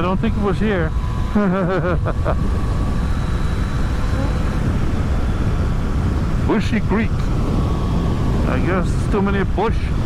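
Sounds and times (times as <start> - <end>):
wind and road noise: 0.0 - 10.0
person laughing: 1.3 - 2.5.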